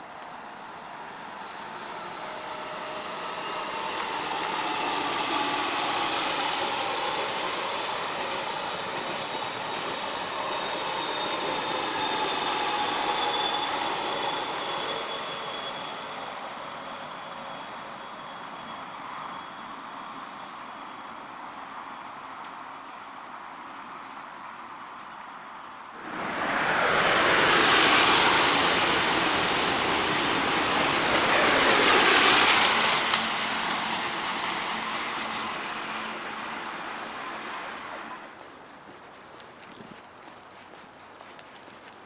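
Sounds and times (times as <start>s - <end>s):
train rumbling over viaduct: 0.0s - 22.0s, 25.9s - 39.4s.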